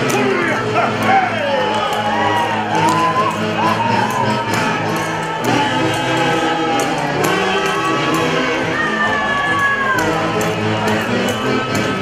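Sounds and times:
live dance music: 0.0s - 12.0s.

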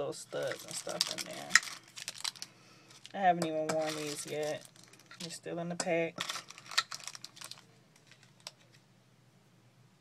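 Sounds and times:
plastic packs clicking and crinkling: 0.4s - 5.3s, 6.2s - 8.7s.

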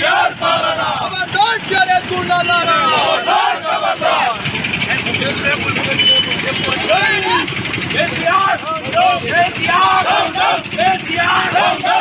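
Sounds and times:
men shouting in chorus: 8.2s - 12.0s.

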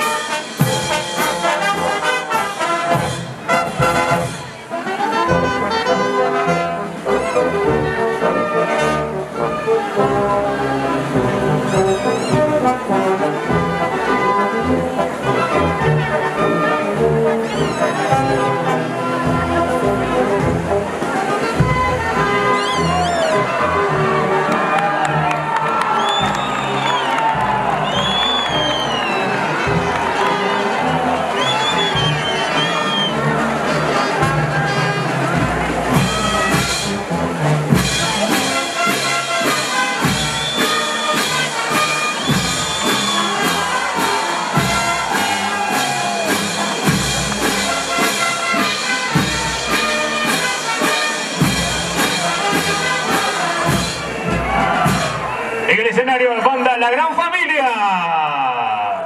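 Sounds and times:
drum and cymbal beat: 0.0s - 4.6s, 35.4s - 55.4s
brass band playing: 0.0s - 57.8s
crowd cheering: 0.0s - 59.0s.

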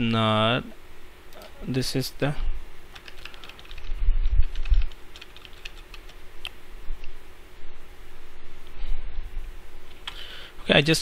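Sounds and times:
keyboard keys tapping: 3.0s - 3.9s, 4.5s - 6.1s.

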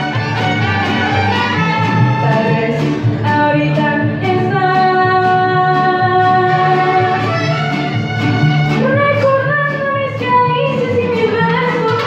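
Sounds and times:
bass line: 0.0s - 12.0s
violins: 0.0s - 12.0s
woman singing: 2.1s - 7.6s, 8.8s - 12.0s.

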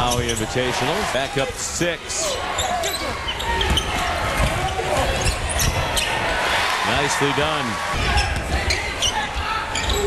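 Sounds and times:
shoe squeaks: 0.0s - 0.5s
crowd noise: 0.0s - 10.0s
ball bouncing on wooden court: 3.6s - 5.8s.

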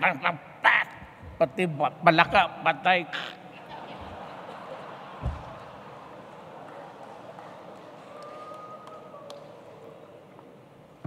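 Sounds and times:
audience laughing: 3.3s - 8.0s.

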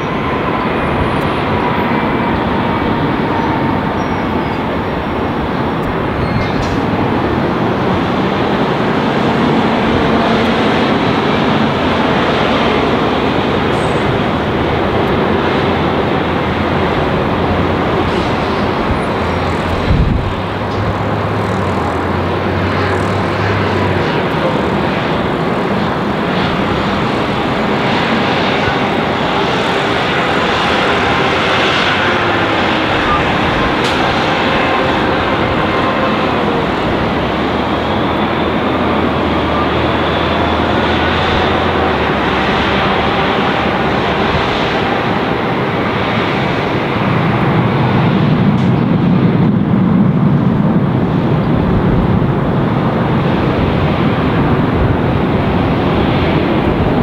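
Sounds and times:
jet engines running: 0.0s - 57.0s.

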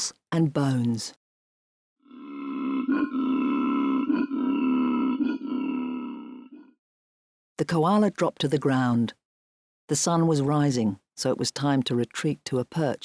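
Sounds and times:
low grunting drone: 2.1s - 6.7s.

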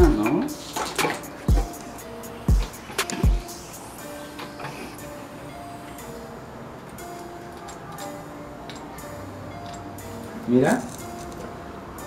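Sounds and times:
light background melody: 0.0s - 12.0s.

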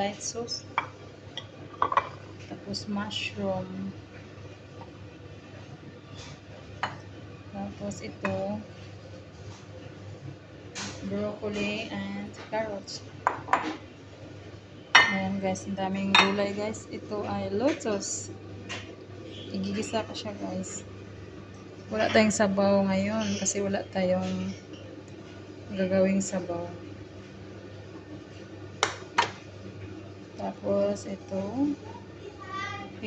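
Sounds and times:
low steady hum: 0.0s - 33.0s
ceramic bowls clinking: 0.8s - 2.2s.

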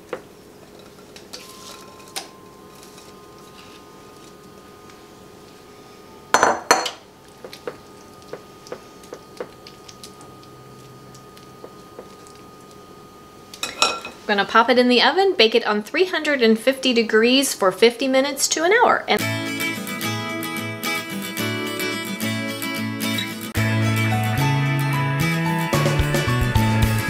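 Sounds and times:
glass bowl clattering on stone: 6.3s - 7.0s, 13.6s - 14.2s.

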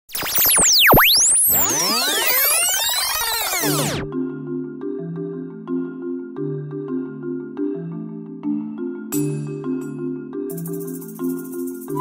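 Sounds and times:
electronic music: 0.1s - 4.1s, 10.5s - 12.0s
synth sweeping pitch glides: 0.1s - 4.1s.

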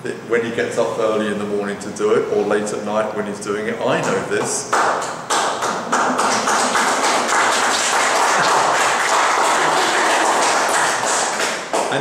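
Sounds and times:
audience applauding: 4.8s - 12.0s.

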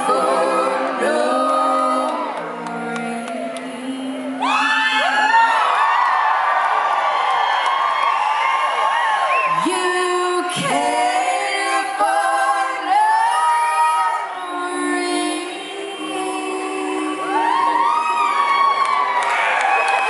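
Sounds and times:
voices singing in harmony: 0.0s - 5.5s, 9.5s - 18.8s
audience whooping and cheering: 0.0s - 10.0s, 17.1s - 20.0s.

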